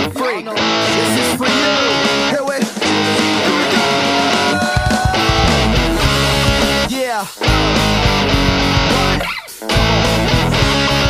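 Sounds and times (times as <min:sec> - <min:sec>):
backing track with drums and vocals: 0:00.0 - 0:11.0
distorted electric guitar: 0:00.0 - 0:11.0.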